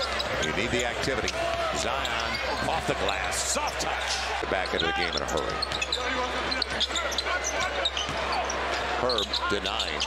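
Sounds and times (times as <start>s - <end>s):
sneaker squeaks: 1.8s - 2.6s, 4.7s - 10.0s.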